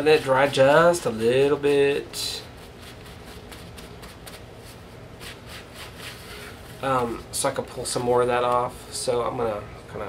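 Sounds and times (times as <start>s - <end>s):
low room hum: 0.0s - 10.0s
faint rubbing strokes: 0.1s - 7.1s.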